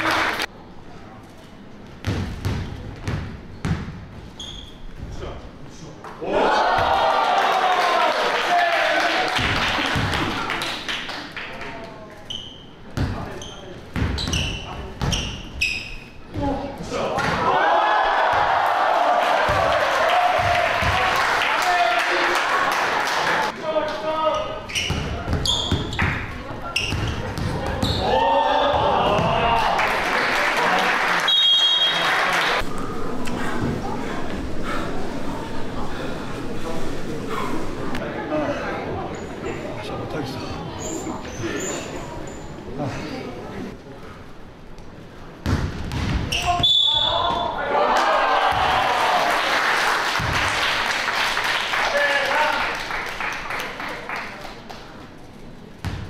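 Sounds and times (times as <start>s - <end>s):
crowd cheering and shouting: 6.2s - 9.5s, 17.4s - 23.5s, 27.7s - 31.2s, 47.1s - 49.5s.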